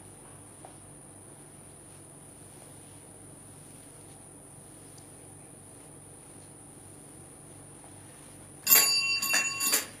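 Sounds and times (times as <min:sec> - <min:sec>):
small bell ringing: 0:08.6 - 0:10.0.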